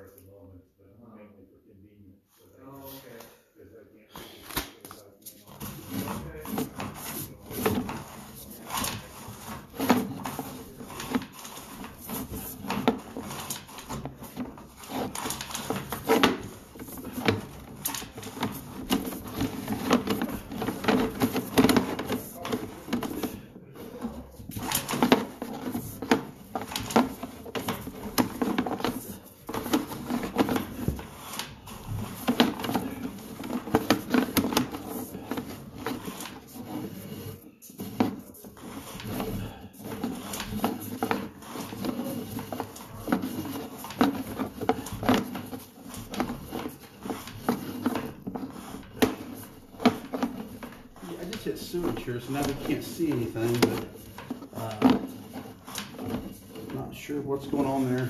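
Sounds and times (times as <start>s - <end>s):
cable knocking and clicking: 5.5s - 58.0s.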